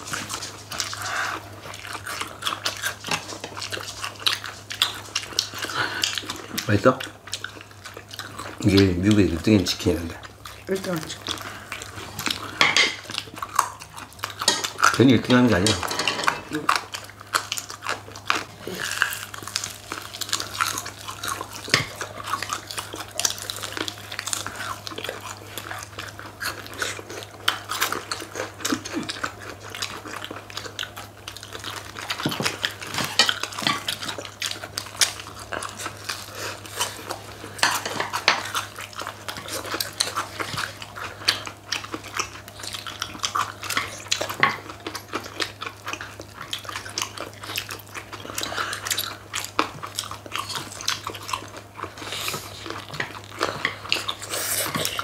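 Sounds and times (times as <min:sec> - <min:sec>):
chewing crispy chicken: 0:00.0 - 0:55.0
wet mouth sounds: 0:38.5 - 0:55.0.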